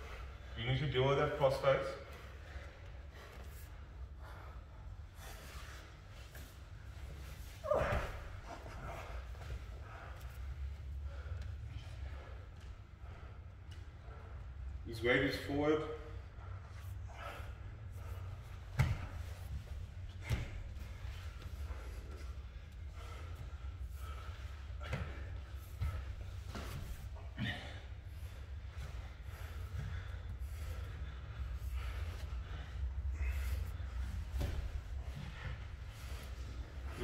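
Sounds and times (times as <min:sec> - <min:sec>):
heavy breathing and effort noises: 0:00.0 - 0:37.0
steady low hum: 0:00.0 - 0:37.0.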